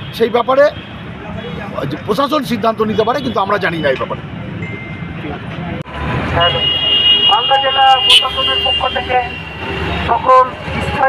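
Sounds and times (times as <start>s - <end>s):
street traffic: 0.0s - 11.0s
man calling through megaphone: 6.3s - 11.0s.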